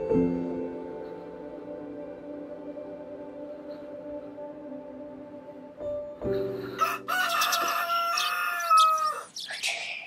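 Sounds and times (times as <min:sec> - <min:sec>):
soft steady musical tone: 0:00.0 - 0:07.9
rooster crowing: 0:06.8 - 0:09.3.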